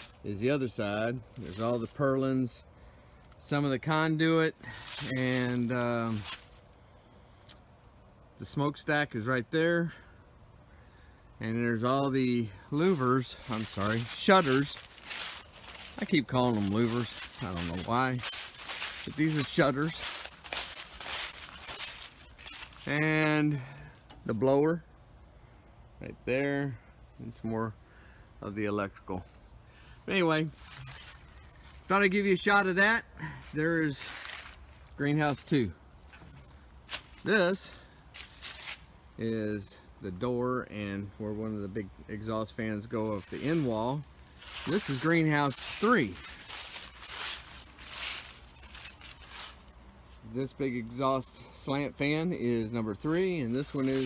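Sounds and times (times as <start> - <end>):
footsteps crunching dry leaves: 0.0 - 2.6, 3.2 - 6.9, 12.1 - 23.7, 30.1 - 39.0, 42.4 - 51.0, 51.6 - 54.0.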